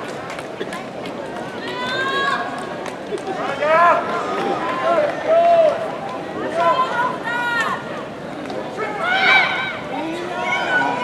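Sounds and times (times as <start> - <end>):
crowd noise: 0.0 - 11.0
voices shouting: 8.8 - 11.0.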